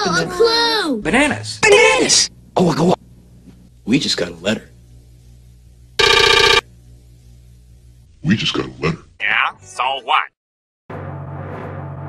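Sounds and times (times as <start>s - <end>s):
pulsing electric ringing buzz: 6.0s - 6.7s.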